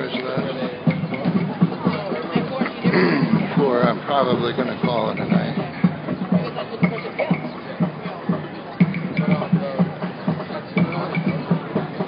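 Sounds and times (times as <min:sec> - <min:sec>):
marchers' voices: 0:00.0 - 0:12.0
marching drums beating: 0:00.0 - 0:12.0.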